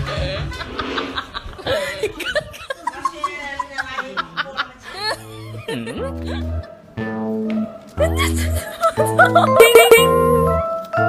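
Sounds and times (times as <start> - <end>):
laughter: 0.0 - 6.7, 8.0 - 10.1
background music: 5.1 - 11.0
sound dipping and rising in pitch: 5.7 - 10.6.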